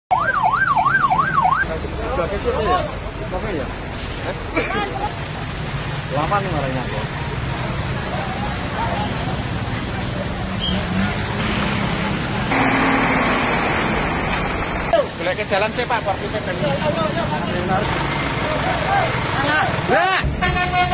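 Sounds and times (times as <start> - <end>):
siren yelping: 0.1 - 1.7
street noise: 0.1 - 20.9
vehicle engine running: 6.4 - 15.0.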